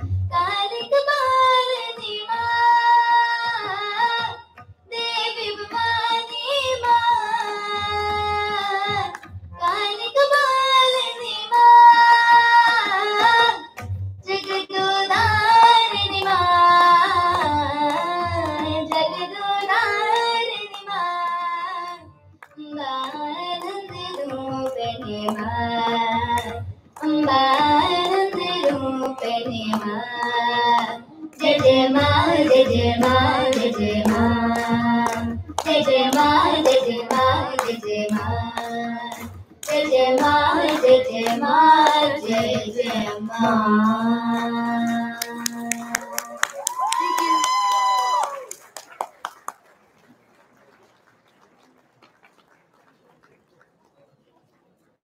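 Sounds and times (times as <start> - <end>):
tabla strokes: 0.0 - 48.6
girls singing: 0.3 - 13.7, 14.3 - 22.0, 22.6 - 46.2.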